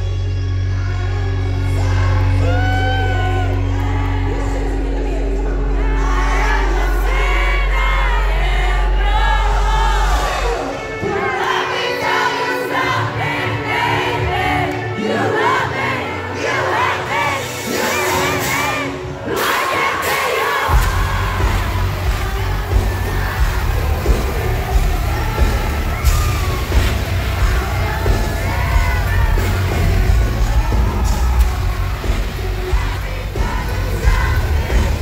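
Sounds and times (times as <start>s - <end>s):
crowd cheering and shouting: 0.0s - 35.0s
live metal band: 0.0s - 35.0s.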